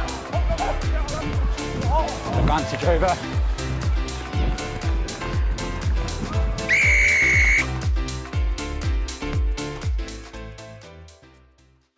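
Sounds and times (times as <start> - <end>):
referee whistle blast: 6.7 - 7.7.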